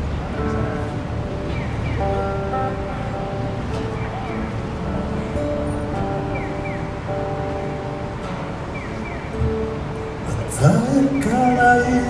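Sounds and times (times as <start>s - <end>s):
acoustic guitars playing chords: 0.0s - 12.0s.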